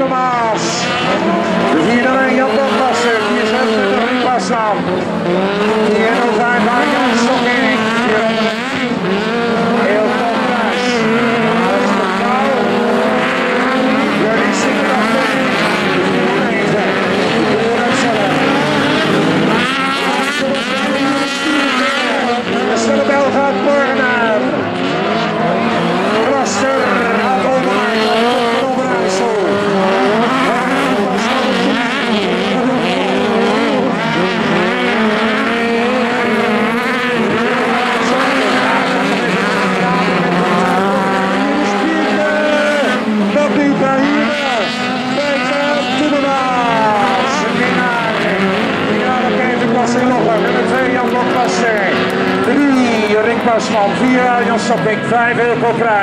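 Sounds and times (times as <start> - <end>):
race car engines revving: 0.0 - 56.0.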